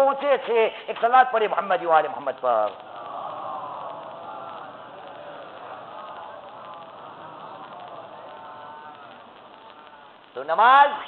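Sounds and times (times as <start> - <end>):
group of voices chanting: 2.8 - 10.2.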